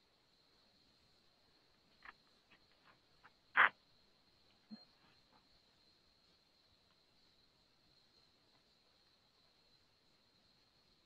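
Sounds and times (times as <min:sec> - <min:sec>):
faint steady high whine: 0:00.0 - 0:11.0
small scattered noises: 0:00.0 - 0:11.0.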